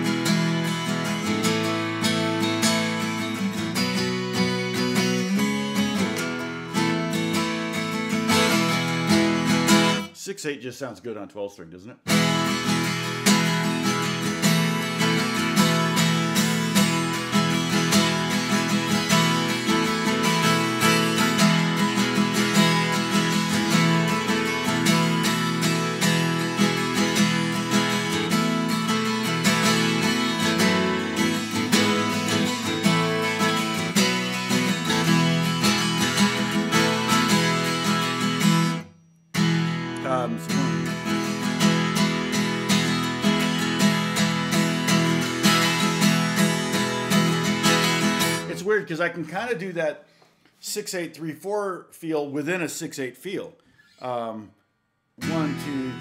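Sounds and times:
acoustic guitar strumming: 0:00.0 - 0:10.6, 0:12.0 - 0:50.5, 0:55.2 - 0:56.0.

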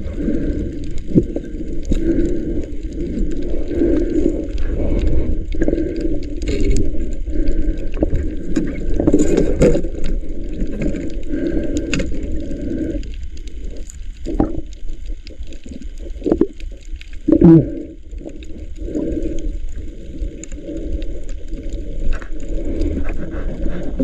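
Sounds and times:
underwater gurgling: 0:00.0 - 0:24.0.

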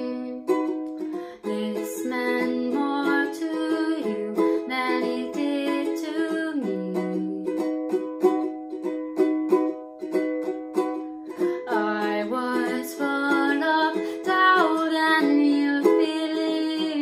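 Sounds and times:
ukulele strumming chords: 0:00.0 - 0:17.0.

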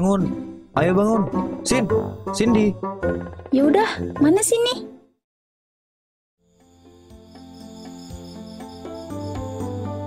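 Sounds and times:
soft background music: 0:00.0 - 0:05.0, 0:06.5 - 0:10.0
crickets chirping: 0:06.4 - 0:10.0.

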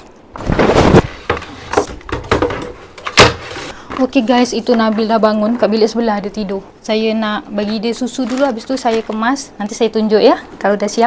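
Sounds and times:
scraping rustle: 0:00.4 - 0:01.9.

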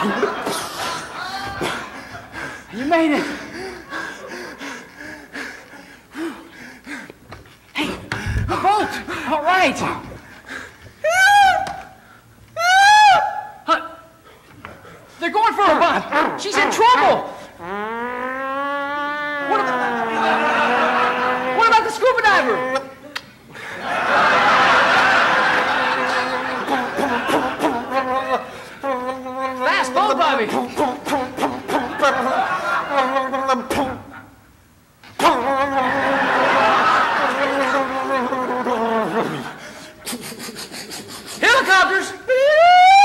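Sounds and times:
person wailing: 0:15.7 - 0:22.9, 0:26.2 - 0:34.1, 0:35.2 - 0:39.5
second voice wailing: 0:15.8 - 0:23.0.

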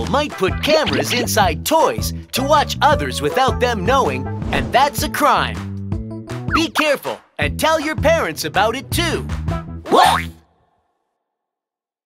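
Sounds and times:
music: 0:00.0 - 0:10.8.

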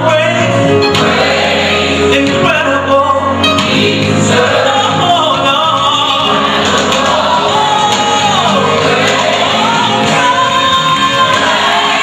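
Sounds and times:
gospel choir singing with band: 0:00.7 - 0:02.5, 0:03.4 - 0:12.0.

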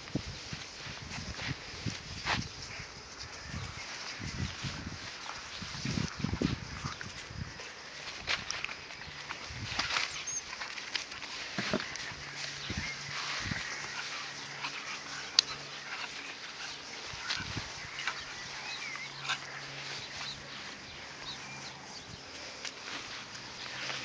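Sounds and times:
puppies scuffling on grass: 0:00.0 - 0:24.0
puppies squeaking and whimpering: 0:09.8 - 0:10.5, 0:11.6 - 0:21.8.

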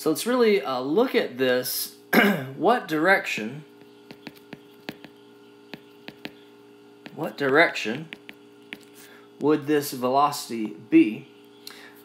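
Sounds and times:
electrical hum: 0:00.0 - 0:12.0
stylus tapping on tablet screen: 0:03.8 - 0:08.9.

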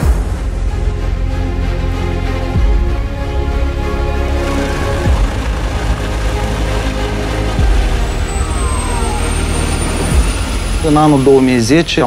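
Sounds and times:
helicopter rotor and turbine noise: 0:00.7 - 0:12.0
high turbine whine: 0:04.9 - 0:12.0.

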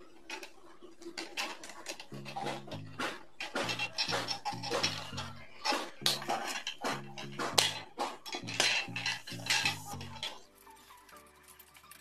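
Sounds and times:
wire and pliers clinking: 0:01.1 - 0:12.0.

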